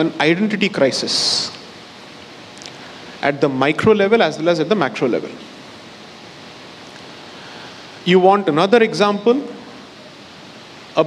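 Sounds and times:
steady recording hiss: 0:00.0 - 0:11.0.

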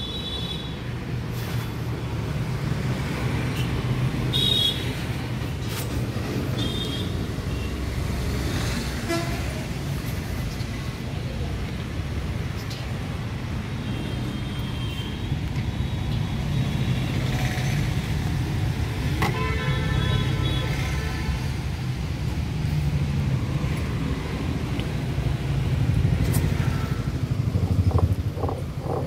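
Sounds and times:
street traffic rumble: 0:00.0 - 0:29.0.

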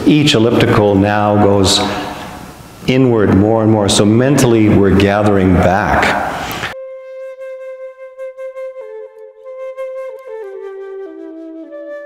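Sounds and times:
room noise: 0:00.0 - 0:06.8
flute holding a note: 0:06.8 - 0:12.0.

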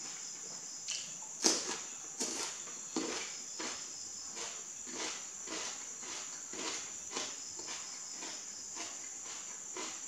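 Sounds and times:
crunchy chewing: 0:00.9 - 0:10.0.

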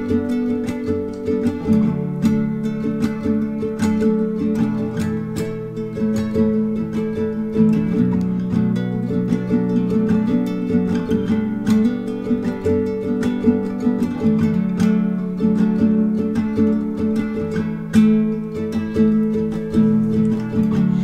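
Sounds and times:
fingerpicked acoustic guitar: 0:00.0 - 0:21.0.

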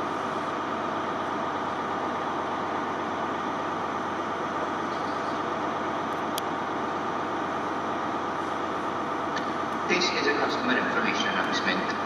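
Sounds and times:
diesel train running: 0:00.0 - 0:12.0
station public address announcement: 0:00.0 - 0:12.0.

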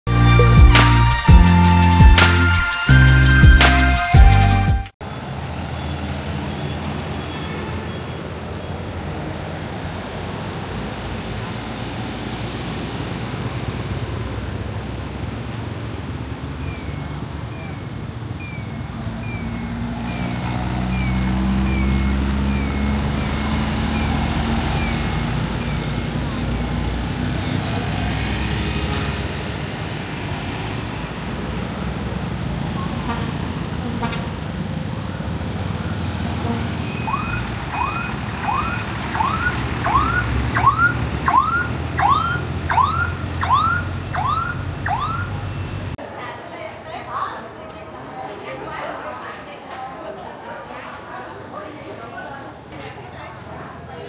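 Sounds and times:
street traffic: 0:00.0 - 0:54.0
motorbike and truck engines: 0:00.1 - 0:46.1
rising siren-like whoops: 0:37.0 - 0:45.5.

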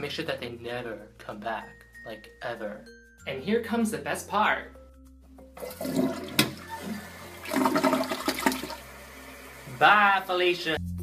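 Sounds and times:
toilet flushing: 0:05.6 - 0:10.0.

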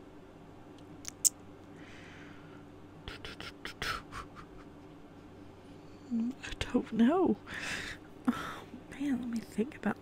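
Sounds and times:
lip smacks and mouth clicks: 0:01.0 - 0:01.4.

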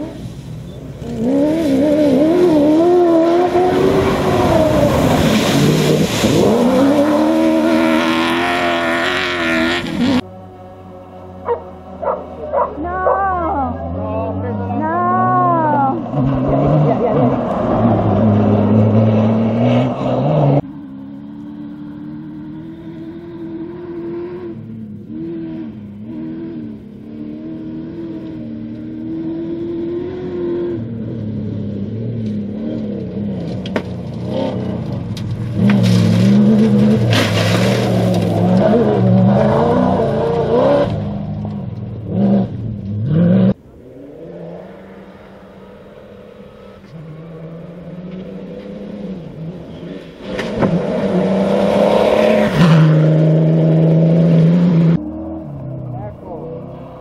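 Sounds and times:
rally car engines revving past: 0:00.0 - 0:57.0.

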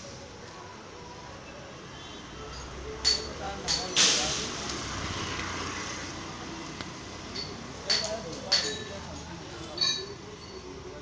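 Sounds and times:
street background: 0:00.0 - 0:11.0.

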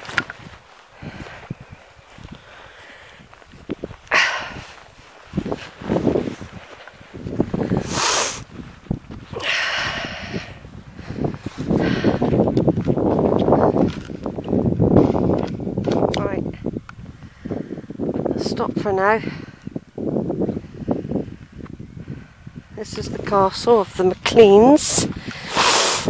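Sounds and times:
footsteps through boggy grass: 0:00.0 - 0:17.3
wind buffeting microphone: 0:00.0 - 0:26.0.

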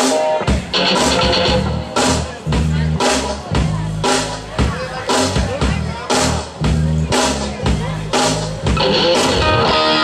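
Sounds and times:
drum kit beating: 0:00.0 - 0:10.0
live country rock band: 0:00.0 - 0:10.0.

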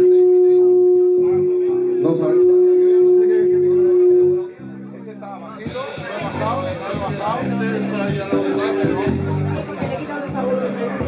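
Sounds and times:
live band held note: 0:00.0 - 0:11.0
voices and room noise: 0:00.0 - 0:11.0.

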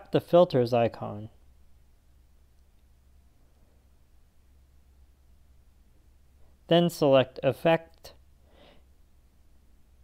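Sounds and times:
faint low hum and hiss: 0:00.0 - 0:10.0.

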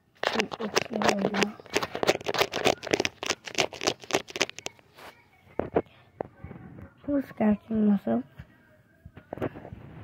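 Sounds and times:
fingernails scratching skin: 0:00.2 - 0:04.8.

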